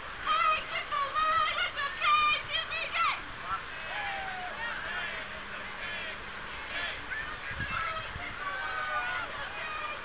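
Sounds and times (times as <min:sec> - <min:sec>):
crowd voices: 0:00.2 - 0:10.0.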